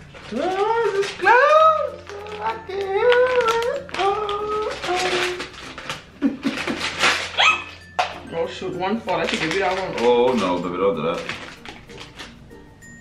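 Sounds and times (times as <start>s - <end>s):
person making wordless vocal sounds: 0.3s - 5.5s.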